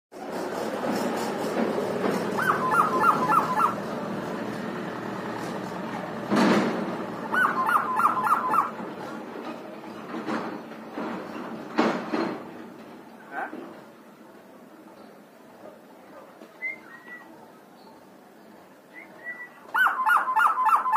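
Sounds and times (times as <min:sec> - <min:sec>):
harsh bird call burst: 0:02.4 - 0:03.8, 0:07.3 - 0:08.8
myna bird whistled calls: 0:02.4 - 0:03.8, 0:07.3 - 0:08.8, 0:16.6 - 0:17.4, 0:18.9 - 0:20.9.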